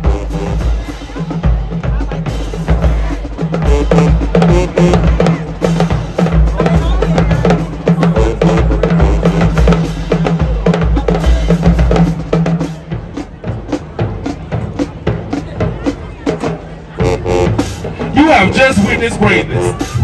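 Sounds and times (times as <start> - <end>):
bass drums and snare drums: 0.0 - 20.0.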